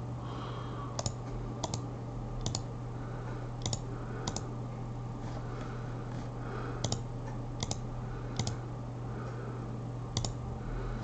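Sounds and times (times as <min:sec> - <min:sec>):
steady low hum: 0:00.0 - 0:11.0
computer mouse clicking: 0:01.0 - 0:01.8, 0:02.4 - 0:02.7, 0:03.6 - 0:04.5, 0:06.8 - 0:08.6, 0:10.2 - 0:10.4.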